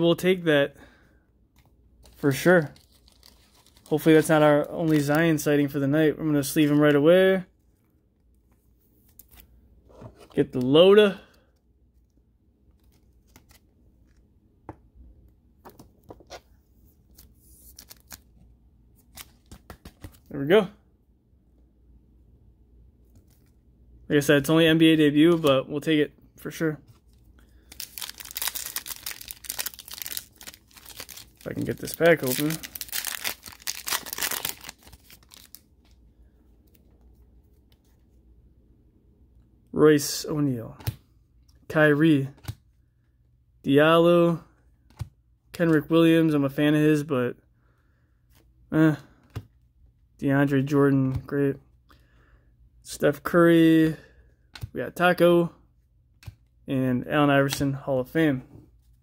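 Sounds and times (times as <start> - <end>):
foil wrapper tearing and crinkling: 2.4 - 5.1, 27.6 - 35.6.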